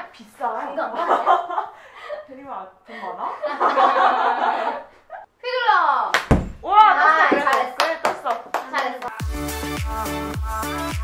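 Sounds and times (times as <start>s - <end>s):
heavy thunk: 6.2s - 6.7s
women exclaiming and laughing: 6.6s - 8.0s.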